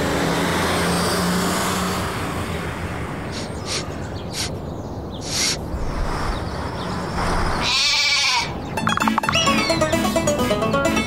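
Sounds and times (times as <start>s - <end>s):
plucked-string cartoon music: 8.8s - 11.0s.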